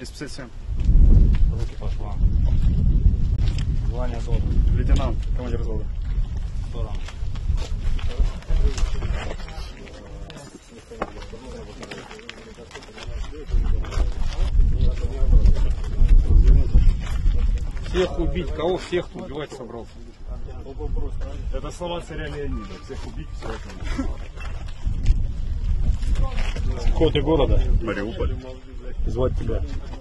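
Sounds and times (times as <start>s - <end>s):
wind buffeting microphone: 0.0s - 11.9s, 12.8s - 30.0s.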